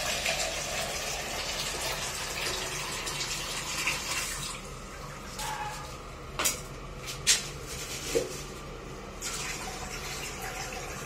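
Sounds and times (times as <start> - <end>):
water running from a faucet: 0.0 - 6.0, 9.2 - 11.0.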